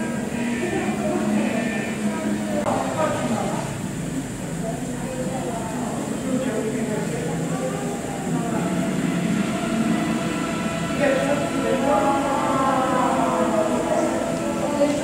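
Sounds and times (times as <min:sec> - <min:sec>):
indistinct voices: 0:00.0 - 0:15.0
rumbling hum: 0:00.0 - 0:15.0.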